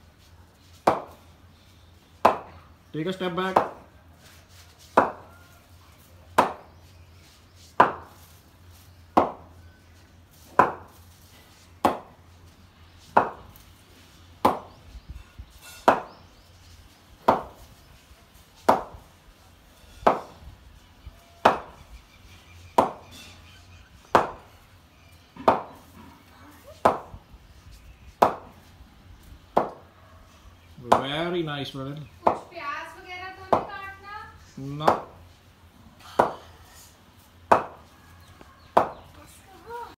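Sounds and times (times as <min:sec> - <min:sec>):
cricket bat knocking ball: 0:05.0 - 0:05.2, 0:07.8 - 0:08.1, 0:09.2 - 0:09.4, 0:10.5 - 0:10.9, 0:13.2 - 0:13.4, 0:14.4 - 0:14.8, 0:15.8 - 0:16.2, 0:17.2 - 0:17.6, 0:18.7 - 0:19.0, 0:21.4 - 0:21.7, 0:22.8 - 0:23.0, 0:24.1 - 0:24.4, 0:25.4 - 0:25.8, 0:26.8 - 0:27.1, 0:28.2 - 0:28.5, 0:33.5 - 0:33.7, 0:34.8 - 0:35.1, 0:37.5 - 0:37.8, 0:38.8 - 0:39.0.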